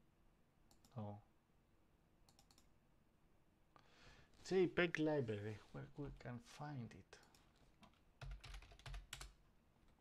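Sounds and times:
computer mouse clicks: 0:00.7 - 0:01.0, 0:02.2 - 0:02.7.

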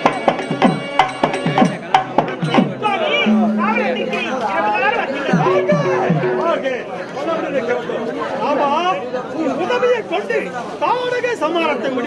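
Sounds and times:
background voices chattering: 0:00.0 - 0:09.6.

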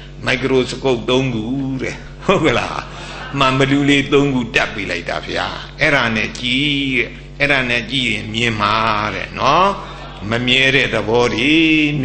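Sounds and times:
man chanting scripture: 0:03.4 - 0:12.0.

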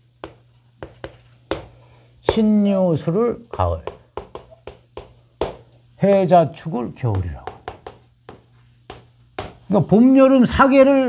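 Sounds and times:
chalk tapping on board: 0:00.2 - 0:02.6, 0:03.4 - 0:05.8, 0:07.0 - 0:09.7
chalk scratching on blackboard: 0:03.5 - 0:05.7, 0:07.1 - 0:09.7.

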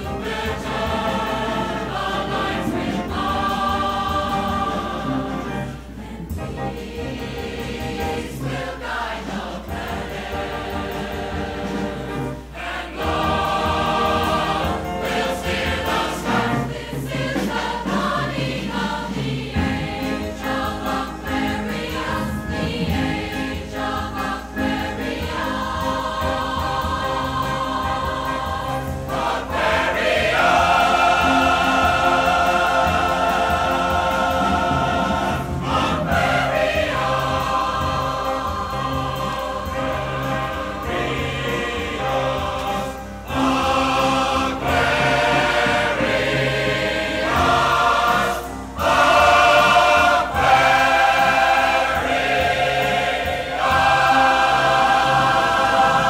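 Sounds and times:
chorus singing held chords: 0:00.0 - 0:56.0.

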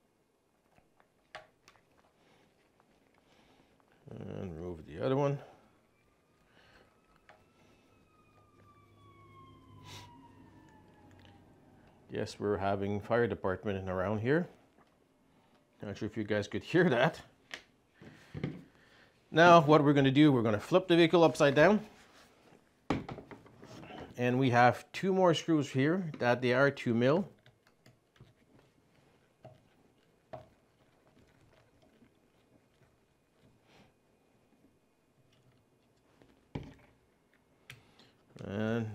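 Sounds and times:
faint fire engine siren: 0:04.0 - 0:13.5.

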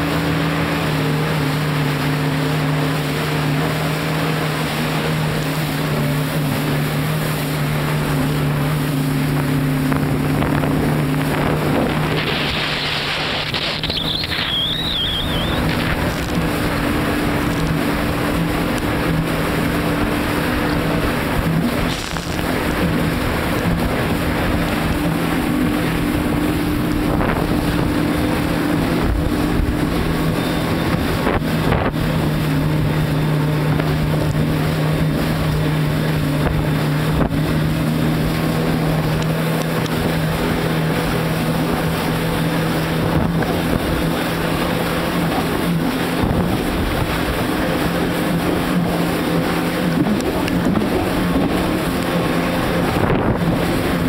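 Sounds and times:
jet ski engine running: 0:00.0 - 0:54.0
wind rushing over microphone: 0:07.5 - 0:34.4, 0:39.8 - 0:54.0.

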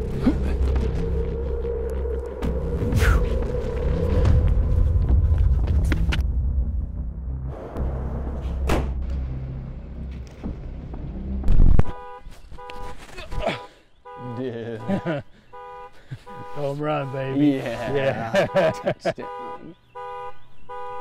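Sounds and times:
film score low drone: 0:00.0 - 0:11.8
loud thud: 0:08.4 - 0:09.2
car alarm beeping: 0:11.9 - 0:21.0.

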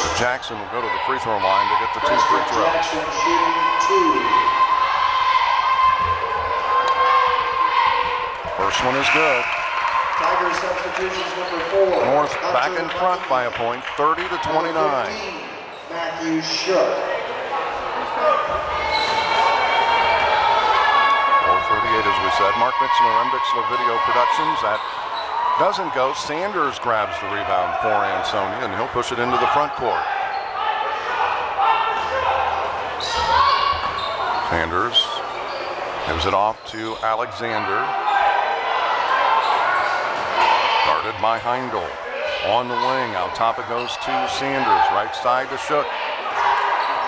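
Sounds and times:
people talking in a hall: 0:00.0 - 0:47.0.

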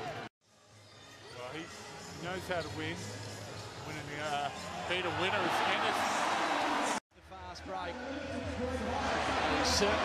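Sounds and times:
arena crowd noise: 0:04.0 - 0:10.0.

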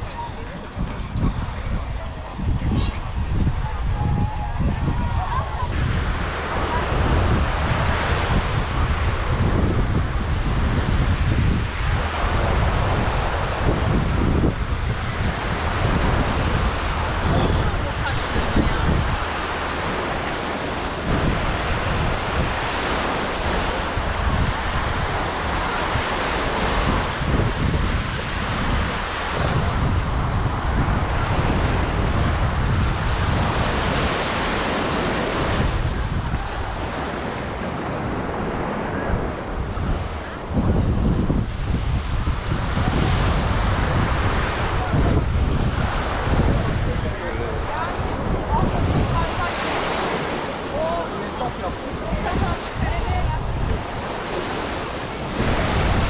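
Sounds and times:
surf washing onto beach: 0:00.0 - 0:56.0
wind buffeting microphone: 0:00.0 - 0:56.0.

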